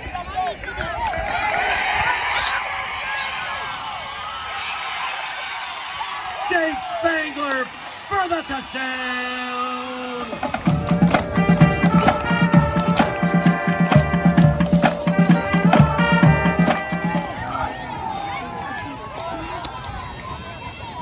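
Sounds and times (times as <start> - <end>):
crowd cheering: 0.0 - 21.0
crowd chatter: 7.7 - 21.0
pep band playing upbeat tune: 10.2 - 17.6.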